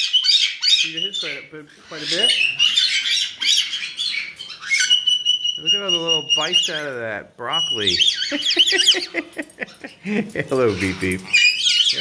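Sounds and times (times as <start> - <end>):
parrots squawking: 0.0 - 12.0.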